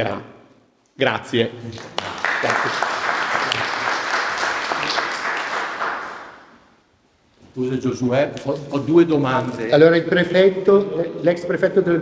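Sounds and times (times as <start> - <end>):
audience applauding: 1.6 - 6.6.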